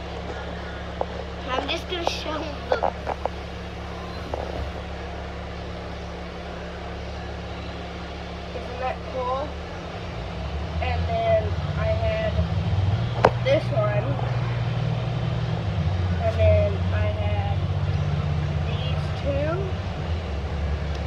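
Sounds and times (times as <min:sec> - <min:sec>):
vehicle rumble from inside cabin: 0:00.0 - 0:21.0
voices talking: 0:00.0 - 0:21.0.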